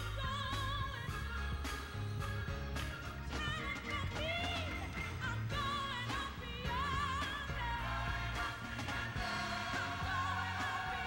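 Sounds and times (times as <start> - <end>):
gospel song with vibrato vocals: 0.0 - 11.0
steady drum beat: 0.0 - 11.0.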